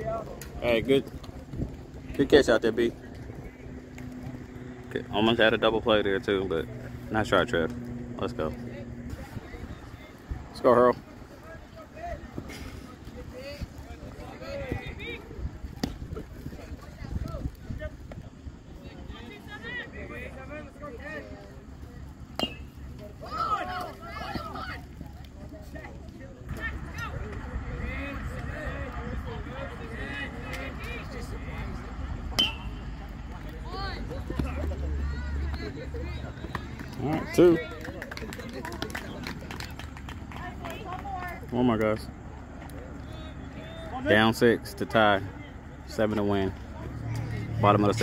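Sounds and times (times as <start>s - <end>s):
players shouting and chattering: 0.0s - 48.0s.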